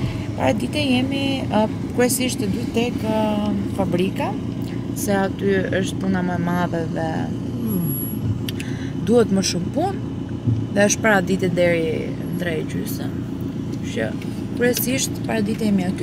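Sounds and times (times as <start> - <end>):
woman talking: 0.0 - 10.0, 10.7 - 16.0
car cabin rumble: 0.0 - 16.0.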